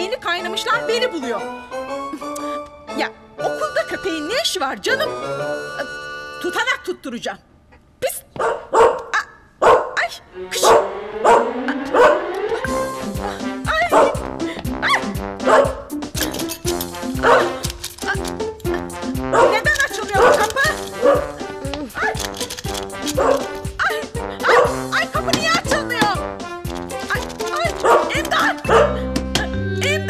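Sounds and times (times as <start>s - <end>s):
comedic background music: 0.0s - 7.0s, 10.2s - 30.0s.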